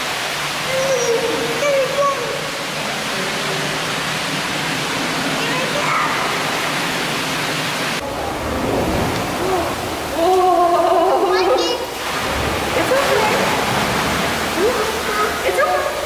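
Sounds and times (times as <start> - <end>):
water rushing: 0.0 - 16.0.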